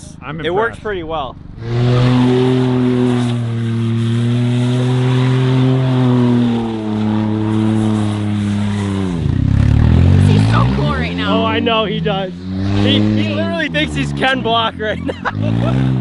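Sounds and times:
car engine revving high: 0.0 - 16.0.

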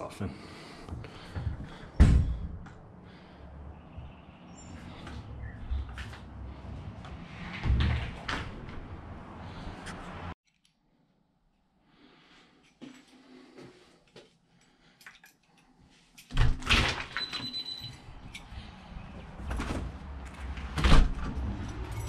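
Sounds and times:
loud thump: 2.0 - 2.6.

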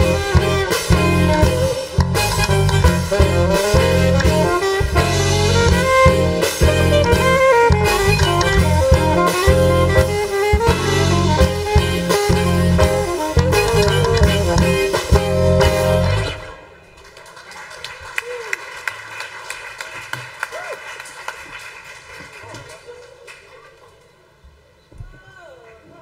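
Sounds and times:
live band playing loudly: 0.0 - 16.9
faint scattered clapping: 16.9 - 24.1.

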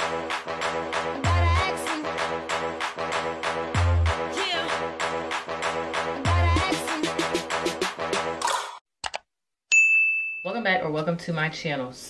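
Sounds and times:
bright bell-like ding: 9.7 - 10.6.

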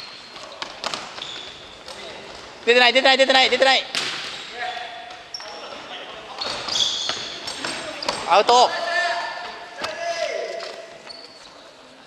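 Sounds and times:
sneakers squeaking: 0.0 - 12.0.

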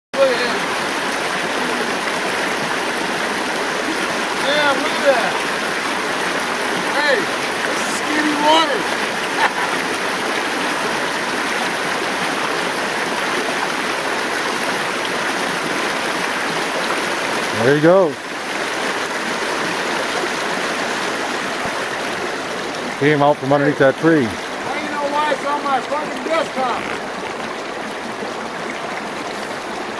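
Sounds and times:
creek rushing over boulders: 0.2 - 29.9.

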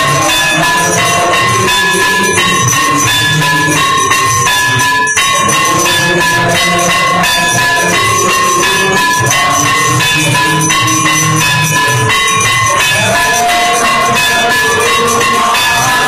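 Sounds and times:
temple bells clanging: 0.0 - 16.0.

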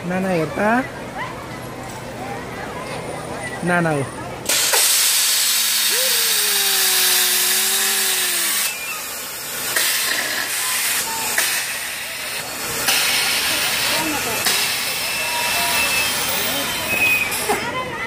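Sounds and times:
voices: 0.0 - 18.0
loud hiss: 4.5 - 17.5
person's long drawn-out call: 5.9 - 8.8.

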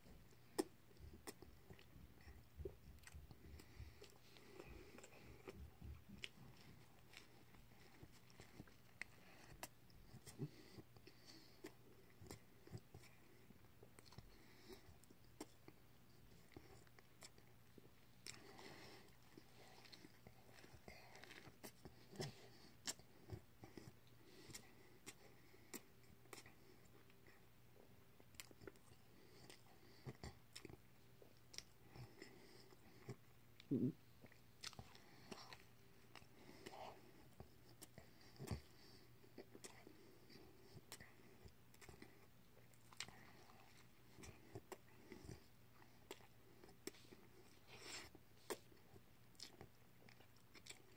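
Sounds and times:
chewing food: 0.0 - 50.9.

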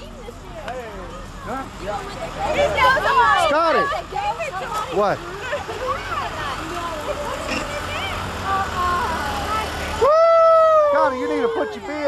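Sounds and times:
truck rumbling: 0.0 - 12.0
long falling yell: 10.0 - 11.8
people shouting: 10.0 - 12.0.

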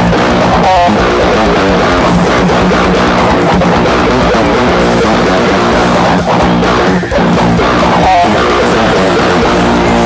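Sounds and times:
band recording playing: 0.0 - 10.0
heavy electric guitar rhythm: 0.0 - 10.0.

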